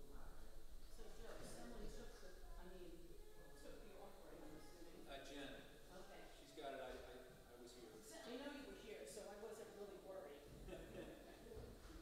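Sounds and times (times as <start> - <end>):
faint voices talking: 0.0 - 12.0.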